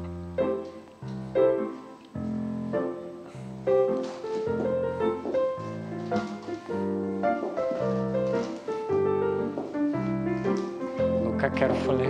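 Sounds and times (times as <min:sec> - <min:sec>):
piano chords on steady beat: 0:00.0 - 0:12.0.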